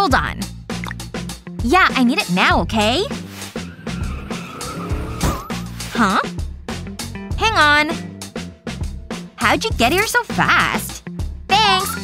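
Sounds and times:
background music: 0.0s - 12.0s
car engine whine rising: 3.4s - 5.8s
tyres squealing: 3.4s - 5.8s.

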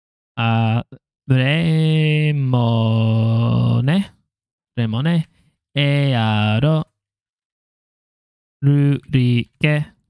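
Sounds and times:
man chanting a low vowel: 0.4s - 4.2s, 8.6s - 10.0s.

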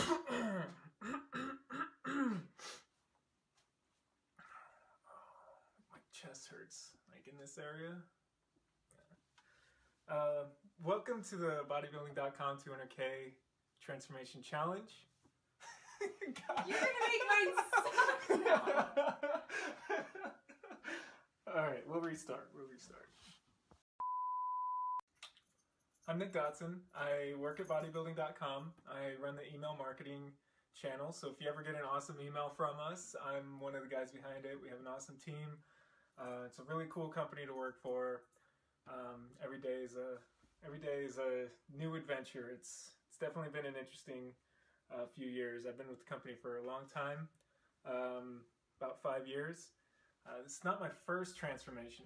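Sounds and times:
man clearing his throat: 0.0s - 2.6s
man coughing: 0.0s - 2.6s
electronic beep tone: 24.0s - 25.0s.

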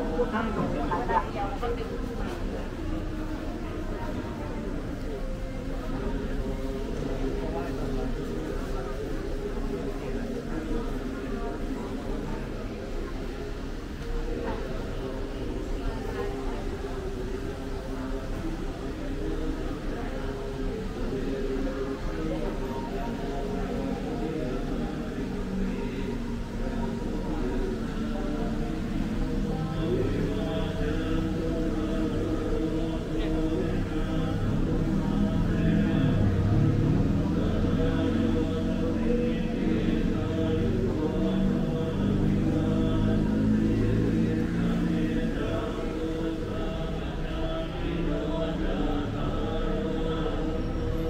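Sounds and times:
person chanting long tones: 0.0s - 51.0s.

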